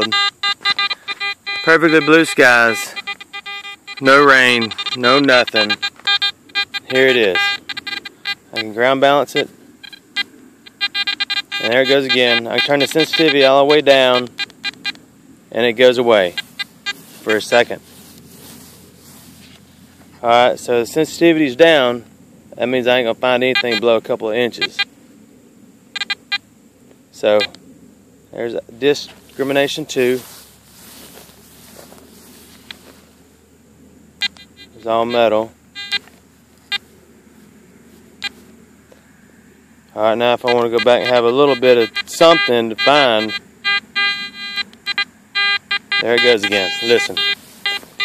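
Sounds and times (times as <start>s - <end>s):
short electronic beeps: 0.0s - 15.0s, 16.3s - 17.7s, 23.5s - 23.9s, 24.6s - 24.9s, 26.0s - 26.4s, 34.2s - 36.1s, 40.4s - 48.0s
search coil rustling through grass: 0.0s - 21.2s, 28.7s - 33.5s, 34.2s - 39.2s, 40.0s - 48.0s.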